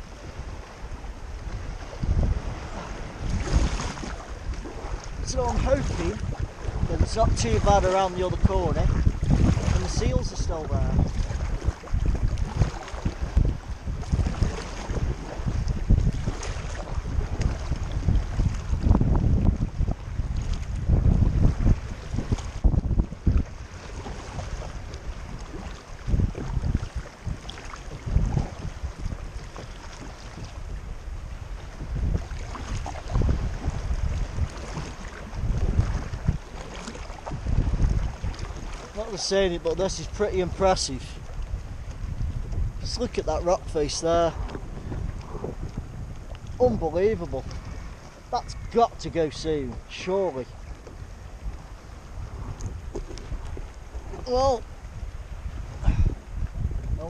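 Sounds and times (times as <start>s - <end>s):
paddle dipping in water: 0.0s - 57.0s
water washing along hull: 0.0s - 57.0s
wind gusting on microphone: 0.0s - 57.0s.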